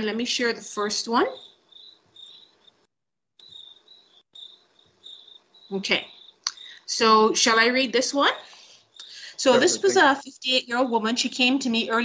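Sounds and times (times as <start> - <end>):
crickets chirping: 1.3 - 2.8, 3.4 - 7.0.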